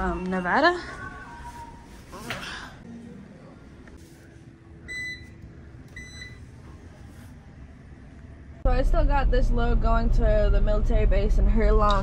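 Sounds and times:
washing machine electronic beeps: 0:04.8 - 0:06.6.

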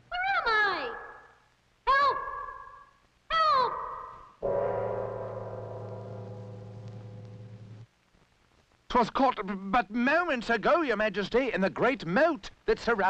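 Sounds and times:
low held musical chord: 0:04.4 - 0:07.8.

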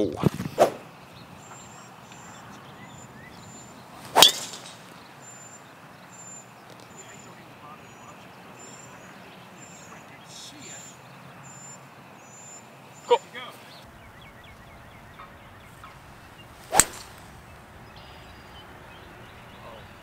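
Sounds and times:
golf club striking ball: 0:04.1 - 0:05.0, 0:13.9 - 0:18.6.

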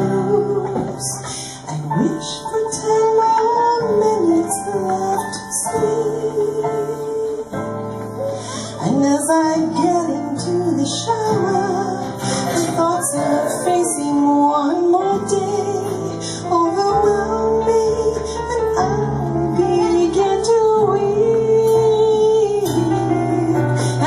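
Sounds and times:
woman singing into microphone: 0:00.0 - 0:24.0.

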